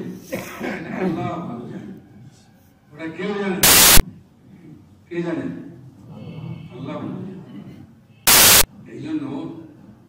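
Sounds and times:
burst of static hiss: 3.6 - 4.0, 8.3 - 8.7.

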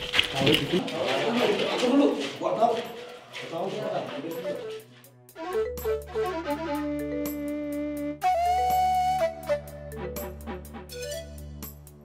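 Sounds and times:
people's voices: 0.0 - 4.9.

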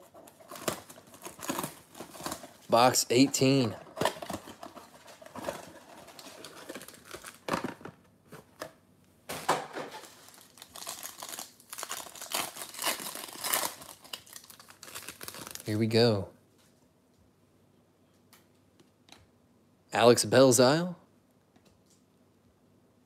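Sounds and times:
cardboard and wrapper crinkling tearing: 0.0 - 7.8, 9.8 - 15.8.

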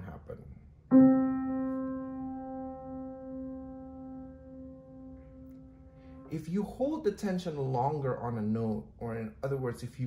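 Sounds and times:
piano note ringing: 0.9 - 7.2.

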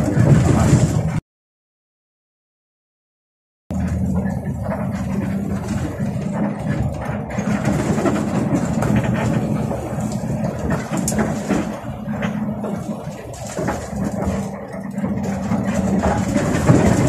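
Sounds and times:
bus engine running: 0.0 - 1.2, 3.7 - 17.0
road noise: 0.0 - 1.2, 3.7 - 17.0.

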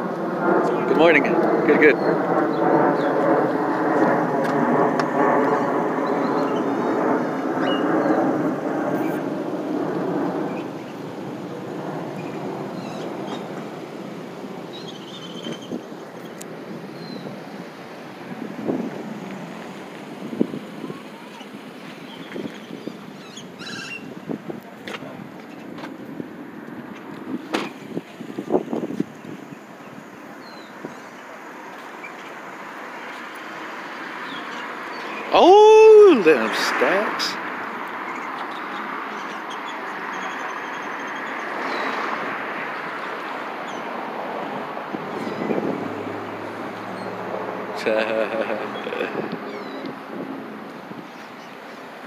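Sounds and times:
wind on microphone: 0.0 - 31.2, 41.0 - 52.0
vehicle engine humming: 0.0 - 51.4
street traffic: 0.0 - 52.0.

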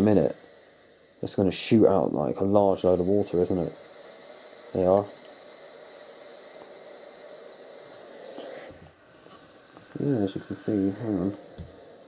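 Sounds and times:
steam iron hissing: 0.0 - 12.0.

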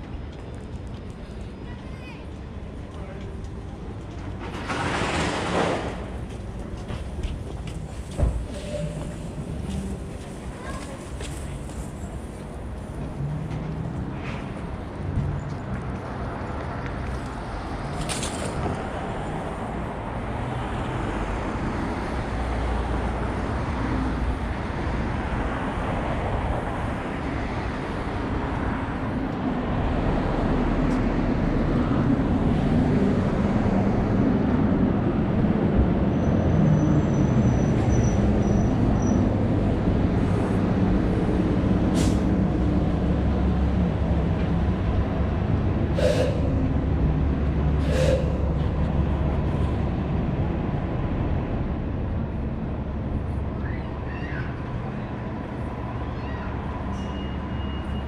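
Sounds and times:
traffic rumble: 0.0 - 58.0.

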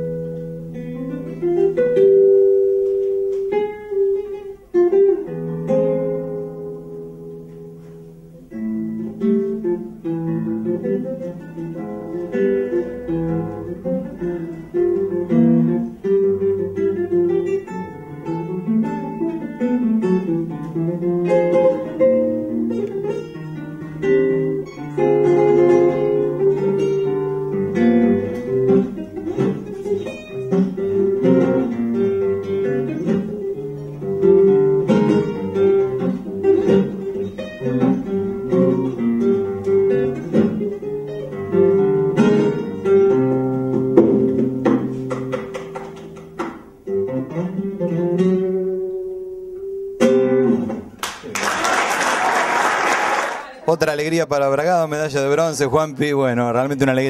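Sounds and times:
solo classical guitar: 0.0 - 51.2.

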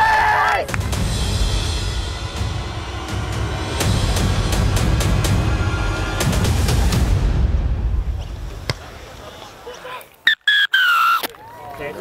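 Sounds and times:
dramatic music with heavy drums: 0.6 - 8.6.

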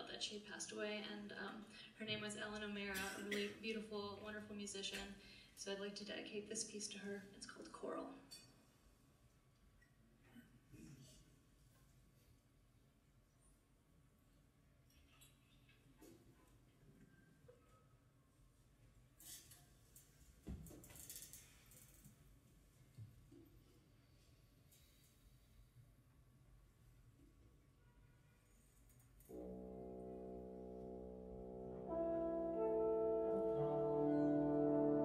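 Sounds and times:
big band horns holding a chord: 29.3 - 35.0.

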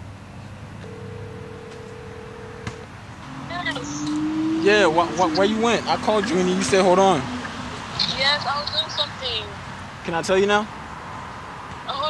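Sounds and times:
phone ringback tone: 0.8 - 2.8.

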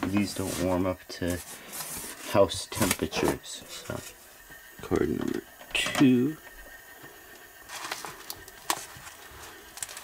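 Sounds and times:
wires rustling: 5.2 - 10.0.

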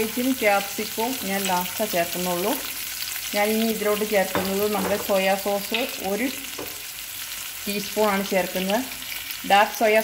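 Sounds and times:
vegetables sizzling in oil: 0.0 - 10.0.

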